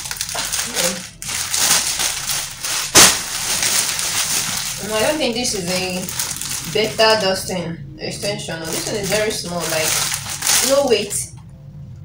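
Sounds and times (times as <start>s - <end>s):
plastic bag rustling and crinkling: 0.0s - 11.3s.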